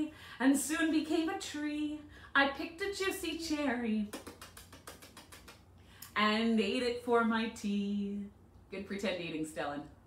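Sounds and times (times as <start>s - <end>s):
soft mouth clicks: 4.1s - 6.2s.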